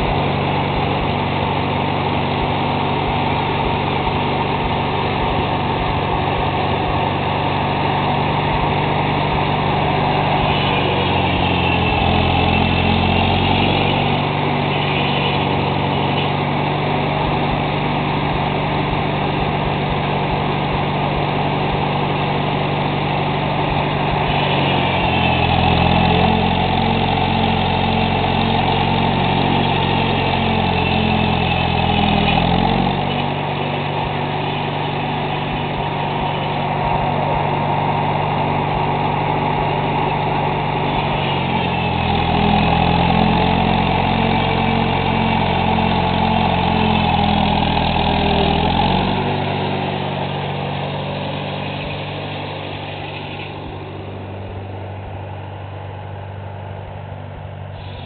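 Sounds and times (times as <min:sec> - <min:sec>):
tractor engine running: 0:00.0 - 0:58.0.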